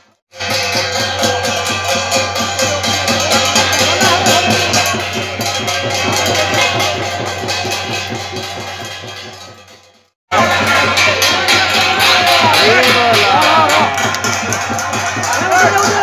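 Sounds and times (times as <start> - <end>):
crowd noise: 0.3 - 16.0
drums beating fast rhythm: 0.3 - 16.0
people shouting: 10.3 - 16.0.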